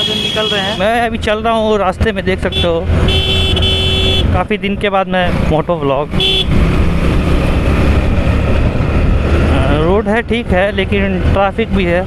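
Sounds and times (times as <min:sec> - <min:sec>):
motorcycle engine drone: 0:00.0 - 0:12.0
road and air rumble: 0:00.0 - 0:12.0.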